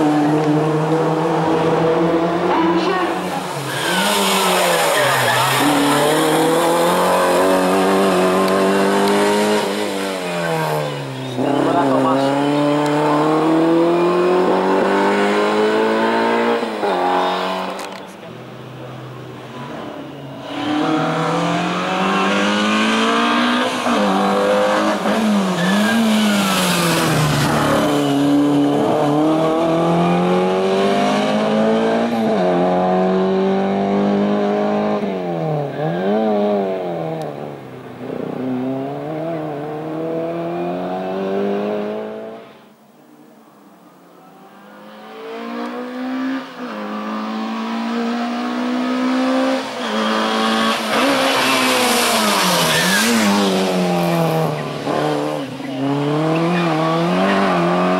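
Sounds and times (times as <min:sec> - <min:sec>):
race car engine revving: 0:00.0 - 0:18.1, 0:20.4 - 0:42.4, 0:44.8 - 0:57.9.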